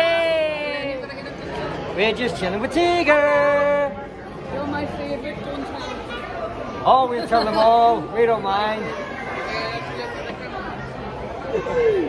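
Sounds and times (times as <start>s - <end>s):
chatter of many diners: 0.0s - 12.0s.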